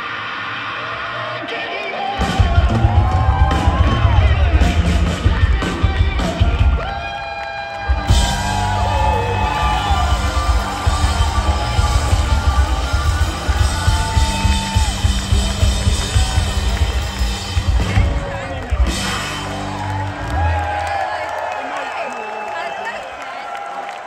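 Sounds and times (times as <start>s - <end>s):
blues-rock band playing live: 2.2s - 7.0s, 7.8s - 20.8s.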